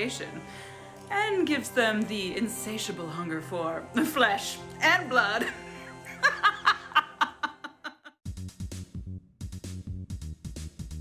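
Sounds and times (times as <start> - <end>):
woman laughing: 5.4 - 8.2.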